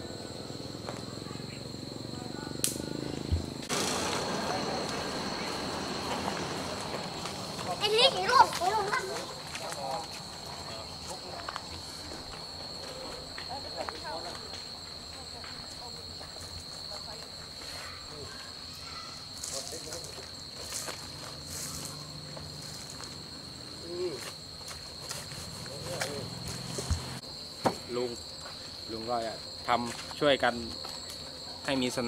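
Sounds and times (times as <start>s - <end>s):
insects chirring: 0.0s - 32.0s.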